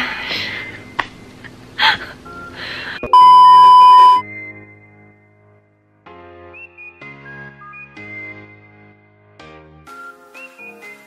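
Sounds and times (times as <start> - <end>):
background music with held notes: 0.0 - 3.1, 4.2 - 11.0
loud single-pitch beep: 3.1 - 4.2.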